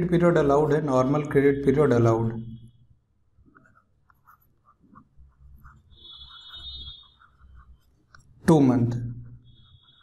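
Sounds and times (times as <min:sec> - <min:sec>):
stylus scratching on tablet: 0:02.6 - 0:10.0.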